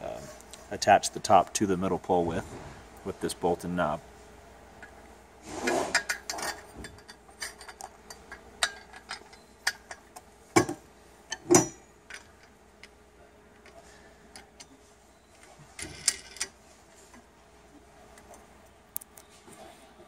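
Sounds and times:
rustling scrape: 5.4s - 6.1s.

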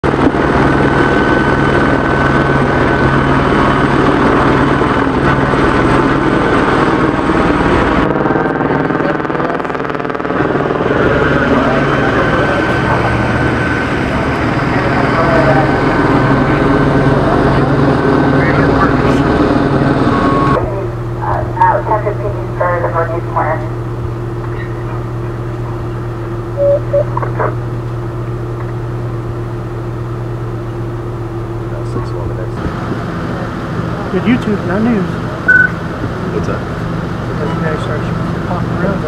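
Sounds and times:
helicopter rotor and engine drone: 0.0s - 39.0s.

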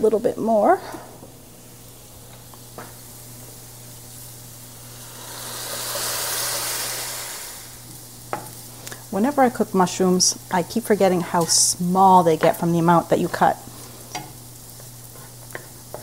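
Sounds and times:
food sizzling in skillets: 1.4s - 16.0s
broth pouring: 4.7s - 7.9s.

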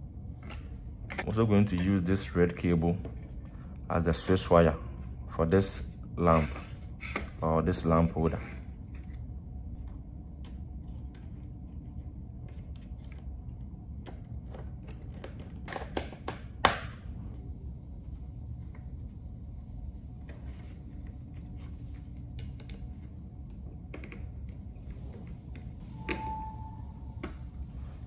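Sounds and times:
low background hum: 0.0s - 28.0s.

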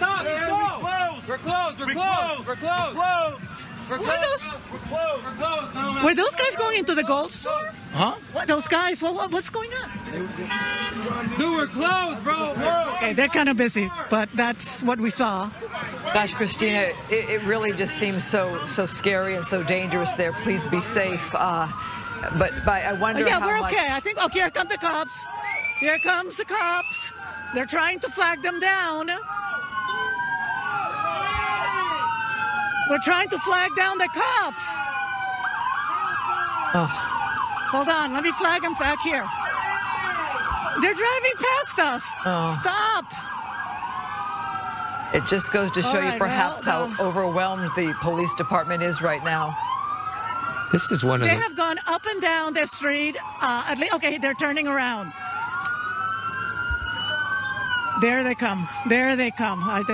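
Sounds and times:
police sirens wailing: 0.0s - 59.9s.

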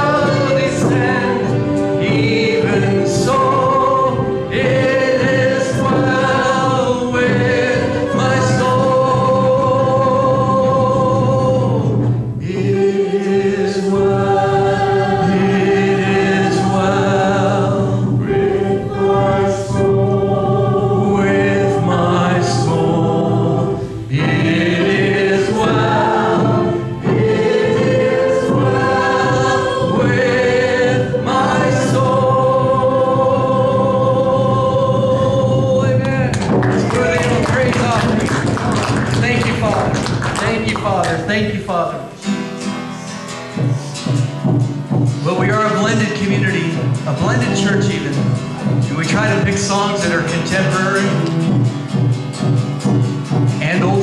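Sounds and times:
guitar accompaniment: 0.0s - 54.0s
voices singing worship song: 0.0s - 54.0s.

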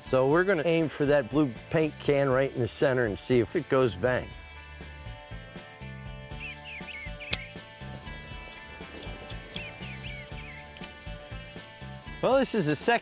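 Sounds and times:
background music with low beat: 0.0s - 13.0s
pistol hammer click: 7.2s - 7.5s.

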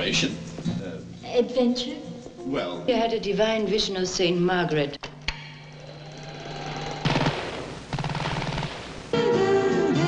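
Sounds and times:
steady low hum: 0.0s - 9.2s.

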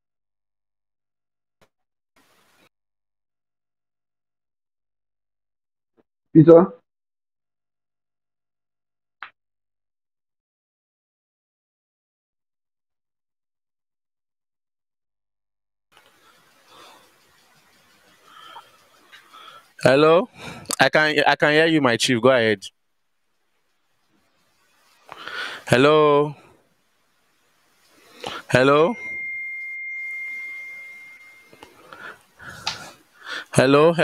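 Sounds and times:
microphone hiss: 23.3s - 29.2s
high-pitched electronic tone: 28.5s - 31.7s.

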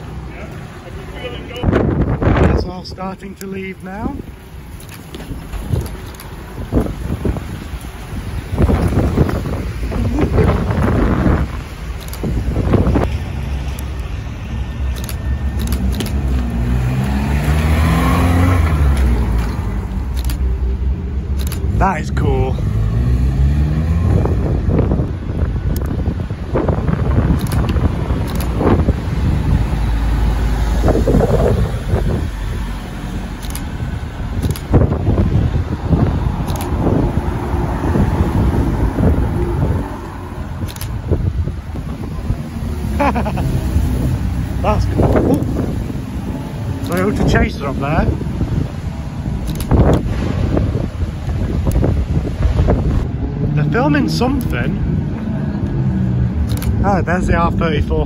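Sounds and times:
car engines revving past: 4.2s - 57.8s.

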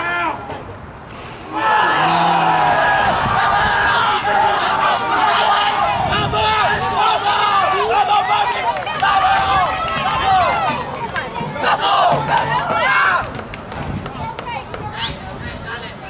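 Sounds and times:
voices shouting over each other: 1.5s - 13.4s.

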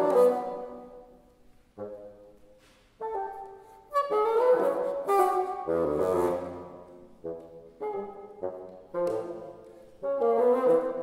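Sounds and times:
solo bassoon playing: 0.0s - 1.1s, 3.0s - 11.0s.

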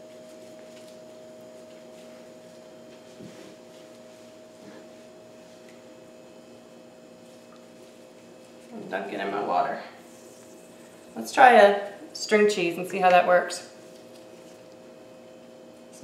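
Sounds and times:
low appliance hum: 0.0s - 16.0s
soft squishing of cheese handling: 0.1s - 8.7s, 13.8s - 15.0s.

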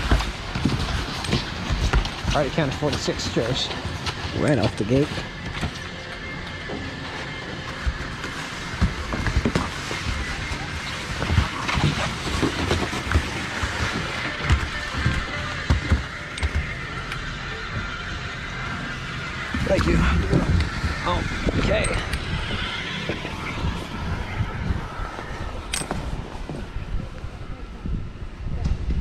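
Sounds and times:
chairlift mechanical hum: 0.0s - 29.0s.

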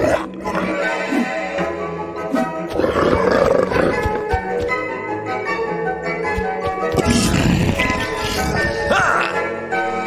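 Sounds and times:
background music: 0.0s - 10.0s
monster roar rasping growl: 7.0s - 8.9s.

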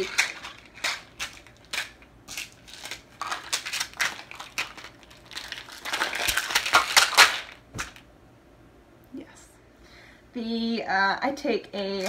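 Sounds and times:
plastic pill bottles rattling: 0.0s - 8.0s.

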